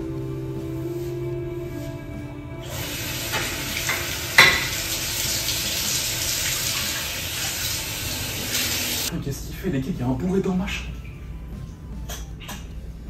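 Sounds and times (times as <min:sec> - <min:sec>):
water running into bathtub: 0:02.6 - 0:09.1.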